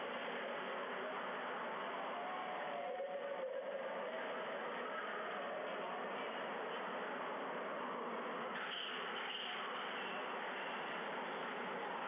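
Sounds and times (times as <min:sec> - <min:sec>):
steady room noise hiss: 0:00.0 - 0:12.0.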